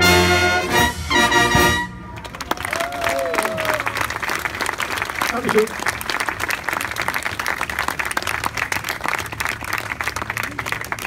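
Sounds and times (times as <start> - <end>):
brass band chord: 0.0 - 2.0
audience applause: 2.1 - 11.0.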